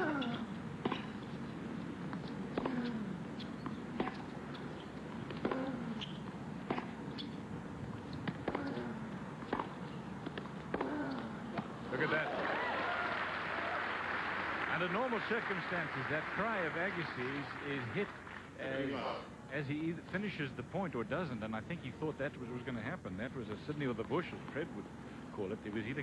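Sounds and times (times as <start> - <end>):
tennis ball bounces: 0.0 - 12.2.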